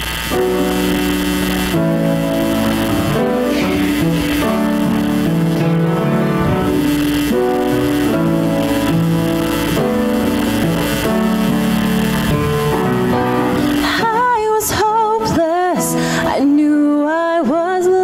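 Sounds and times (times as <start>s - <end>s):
held piano chords: 0.0s - 17.4s
acoustic guitar: 0.0s - 17.9s
person singing with vibrato: 1.4s - 7.1s, 13.1s - 18.0s.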